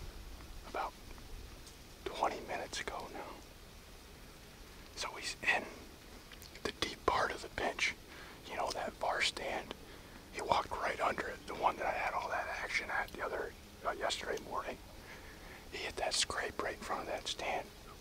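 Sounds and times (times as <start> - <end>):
man whispering: 0.7 - 1.0, 2.0 - 3.4, 5.0 - 5.8, 6.5 - 14.8, 15.5 - 18.0.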